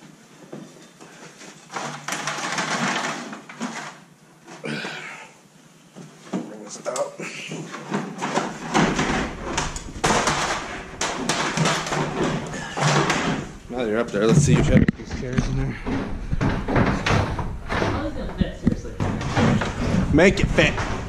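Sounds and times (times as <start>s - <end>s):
ladder clanking against rafters: 7.6s - 21.0s.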